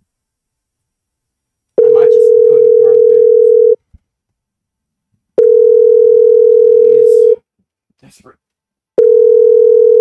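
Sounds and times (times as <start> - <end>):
telephone ringing tone: 1.8 - 3.8, 5.4 - 7.4, 9.0 - 10.0.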